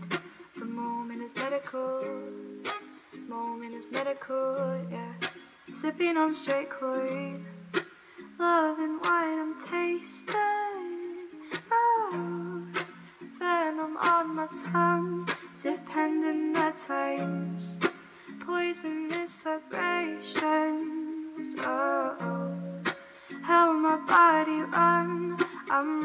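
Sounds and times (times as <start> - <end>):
ukulele strumming chords: 0.0 - 26.0
woman singing: 0.0 - 26.0.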